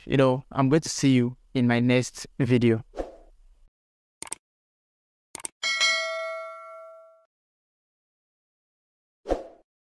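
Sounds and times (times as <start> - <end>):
notification bell ding: 5.6 - 7.3.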